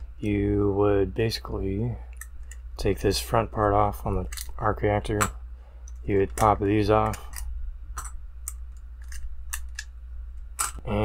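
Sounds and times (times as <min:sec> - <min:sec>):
plastic pieces clicking off: 0:05.9 - 0:09.9, 0:10.6 - 0:10.8.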